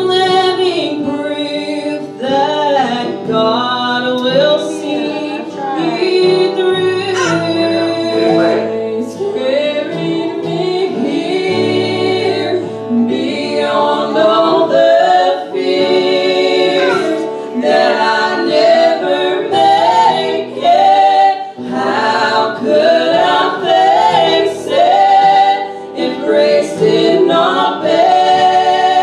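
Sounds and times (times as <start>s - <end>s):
group singing gospel song: 0.0s - 29.0s.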